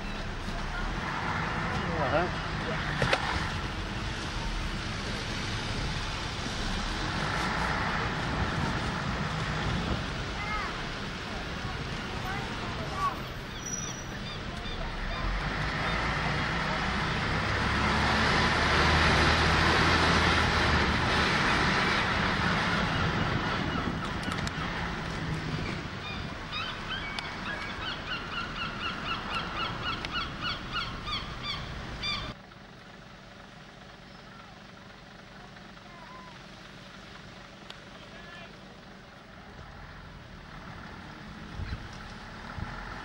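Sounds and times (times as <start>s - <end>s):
bus engine hum: 0.0s - 43.0s
wind noise on microphone: 8.0s - 10.5s, 21.8s - 27.1s, 41.4s - 43.0s
bird calling: 26.0s - 32.4s.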